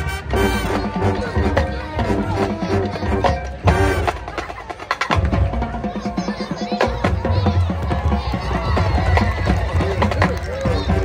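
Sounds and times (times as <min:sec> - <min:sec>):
marching band playing: 0:00.0 - 0:11.0
spectators talking: 0:00.0 - 0:11.0.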